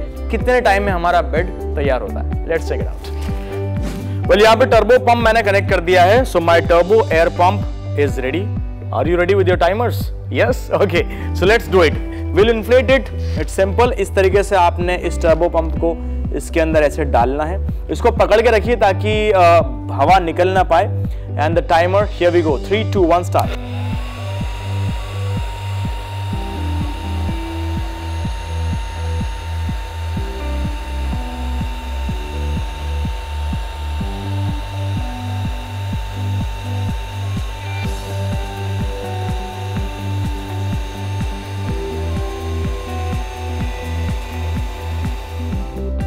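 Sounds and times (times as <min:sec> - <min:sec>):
electric air pump running: 0:00.0 - 0:00.5, 0:02.7 - 0:04.9, 0:23.3 - 0:46.0
music with bass beat: 0:00.0 - 0:19.4, 0:23.4 - 0:46.0.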